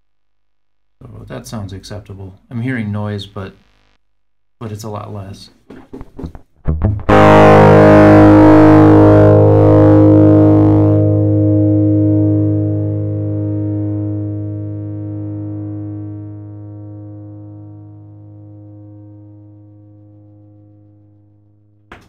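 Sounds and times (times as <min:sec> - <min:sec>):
distorted electric guitar: 0:06.6 - 0:21.0.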